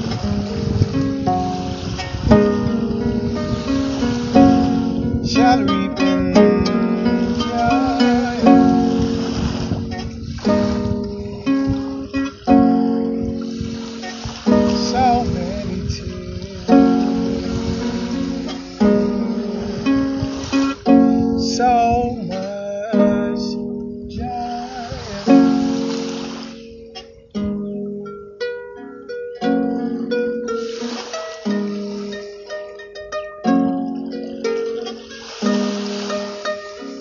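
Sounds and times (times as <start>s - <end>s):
wooden harp chords plucked: 0.0s - 37.0s.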